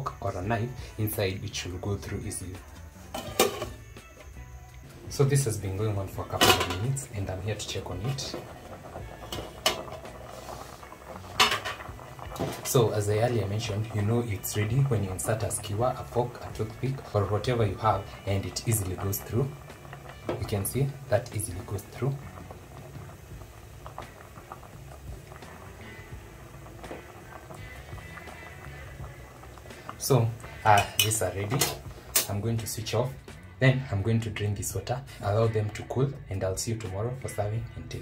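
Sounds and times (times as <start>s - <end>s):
pot lid clanking: 3.1s - 3.8s, 6.3s - 7.0s, 9.2s - 10.1s, 11.3s - 12.8s, 30.7s - 32.3s
water bubbling in a pot: 5.4s - 32.2s.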